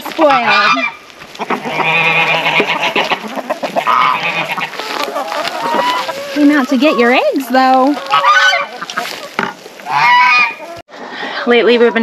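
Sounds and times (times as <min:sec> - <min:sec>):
goose honking: 0:00.1 - 0:10.8.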